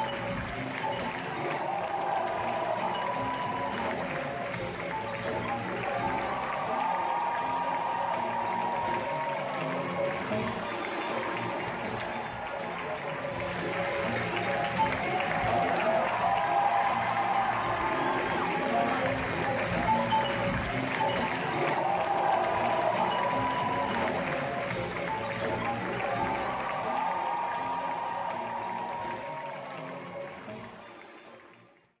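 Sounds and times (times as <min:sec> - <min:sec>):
stage musical music: 0:00.0 - 0:31.6
audience applause: 0:00.0 - 0:31.9.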